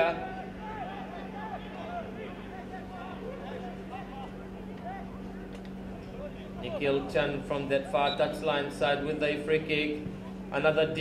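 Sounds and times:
football players shouting: 0:00.0 - 0:11.0
steady low hum: 0:00.0 - 0:11.0.

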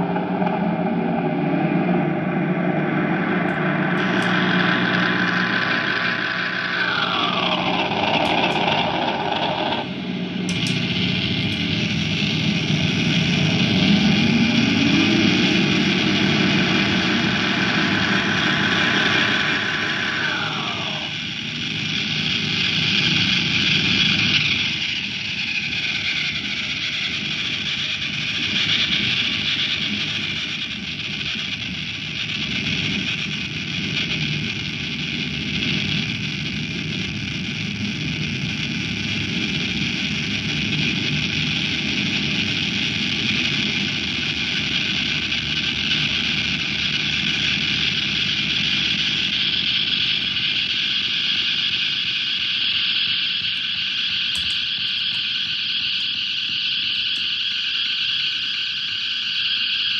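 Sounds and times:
distorted electric guitar feedback: 0:00.0 - 0:59.9.

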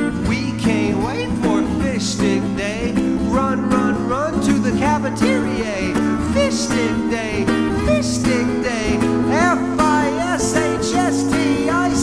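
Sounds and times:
acoustic guitar strumming: 0:00.0 - 0:12.0
man singing into microphone: 0:00.0 - 0:12.0.

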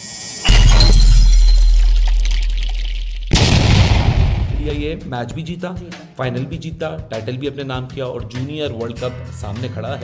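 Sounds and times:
shattering crash: 0:00.4 - 0:04.6
heavy impact with deep drone: 0:00.5 - 0:05.1.

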